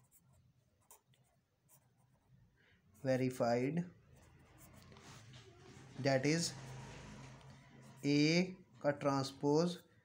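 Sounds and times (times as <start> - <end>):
pen scratching on paper: 0.0 - 8.5.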